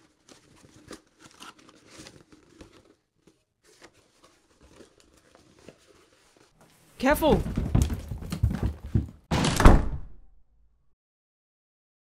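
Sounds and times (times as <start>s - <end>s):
cardboard box rummaging: 0.0s - 6.5s.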